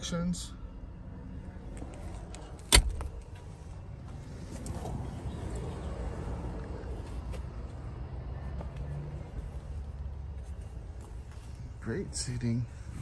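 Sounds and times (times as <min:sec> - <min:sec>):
low rumble of handling noise: 0:00.8 - 0:11.9
truck door clunk: 0:02.6 - 0:03.3.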